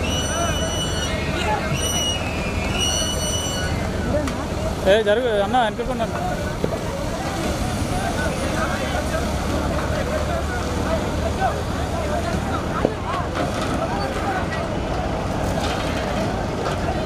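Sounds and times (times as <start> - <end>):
crane engine running: 0.0 - 17.0
crowd chatter: 0.0 - 17.0.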